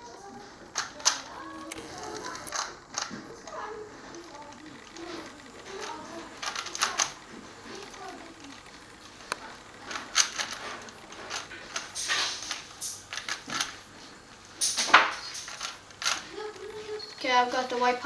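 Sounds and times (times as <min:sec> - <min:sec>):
plastic puzzle cube clicking: 0:00.8 - 0:13.8, 0:14.6 - 0:16.7.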